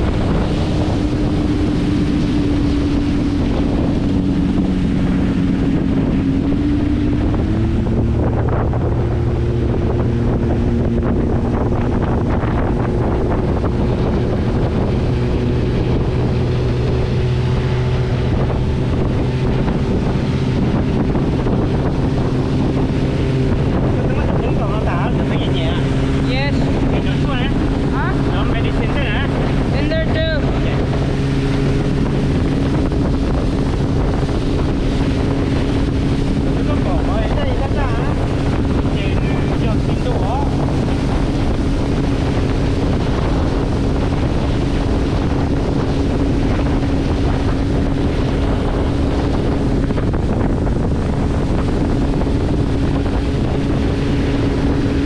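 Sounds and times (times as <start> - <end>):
motorboat engine running: 0.0 - 55.0
water rushing along hull: 0.0 - 55.0
wind buffeting microphone: 0.0 - 55.0.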